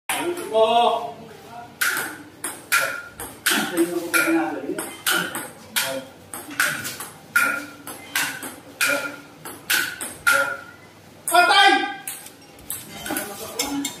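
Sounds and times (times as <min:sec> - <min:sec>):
table tennis ball hits: 0:01.8 - 0:10.7.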